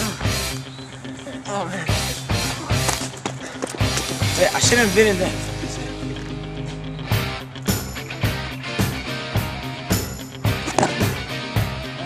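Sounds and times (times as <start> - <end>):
steady drum beat: 3.8 - 6.5
sustained instrumental notes: 3.8 - 9.3.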